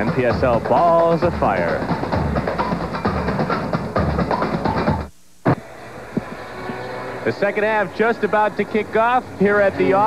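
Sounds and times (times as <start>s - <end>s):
drum-driven theme music: 0.0s - 5.6s.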